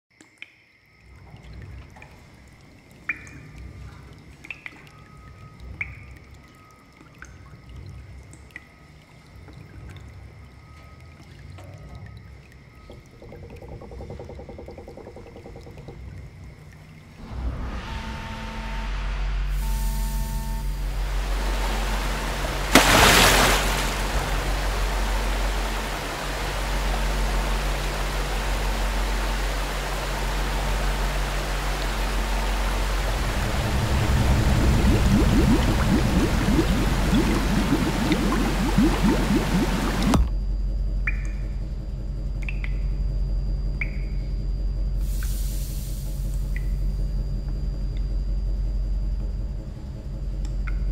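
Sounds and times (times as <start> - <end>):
low machine hum: 1.0 - 50.9
heavy water pouring: 21.1 - 40.2
steady deep rumble: 23.6 - 45.2
thin steady high tone: 26.7 - 40.2.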